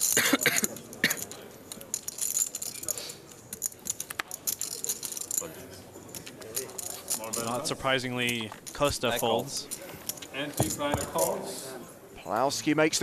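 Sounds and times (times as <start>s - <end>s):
poker chips clicking and clattering: 0.0s - 5.5s, 6.1s - 11.4s.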